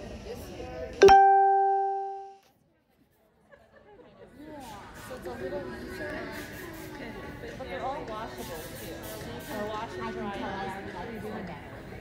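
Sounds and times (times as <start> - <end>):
plucked string note: 1.0 - 2.3.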